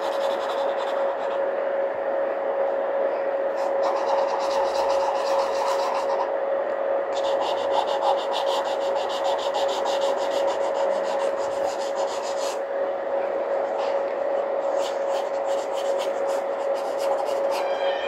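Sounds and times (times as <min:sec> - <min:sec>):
pencil scratching on paper: 0:00.0 - 0:01.4, 0:03.6 - 0:06.3, 0:07.2 - 0:12.6, 0:14.6 - 0:17.6
steady hum: 0:00.0 - 0:18.0.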